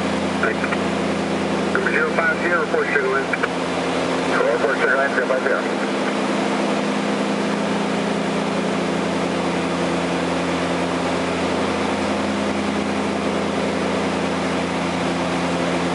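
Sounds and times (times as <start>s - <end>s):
propeller plane engines droning: 0.0s - 15.9s.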